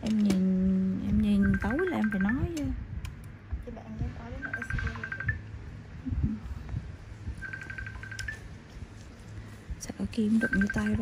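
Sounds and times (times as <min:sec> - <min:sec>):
phone ringing electronic trill: 0:01.3 - 0:02.5, 0:04.4 - 0:05.5, 0:07.4 - 0:08.6, 0:10.3 - 0:11.0.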